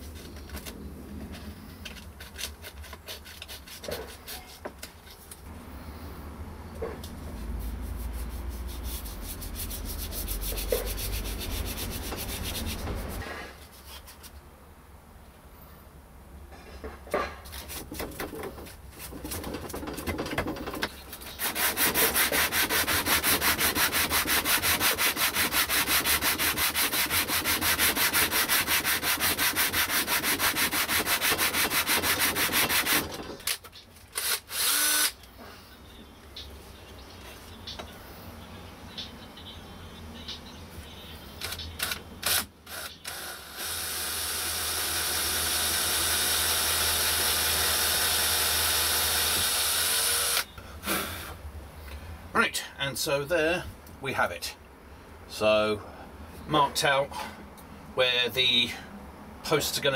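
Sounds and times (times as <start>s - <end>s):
wood rubbed on sandpaper: 7.4s - 14.2s, 21.3s - 33.0s
cordless drill running: 34.2s - 35.2s, 42.3s - 50.5s.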